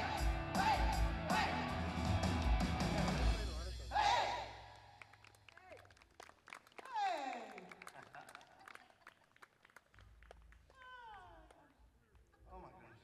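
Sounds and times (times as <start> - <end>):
audience clapping: 4.7 - 11.9.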